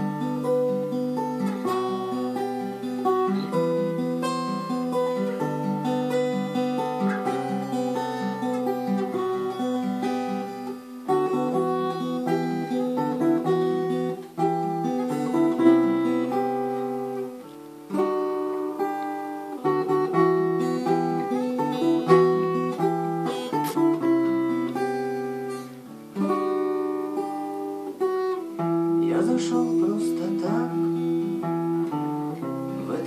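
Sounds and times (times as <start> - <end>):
acoustic guitar picked melody: 0.0 - 33.0.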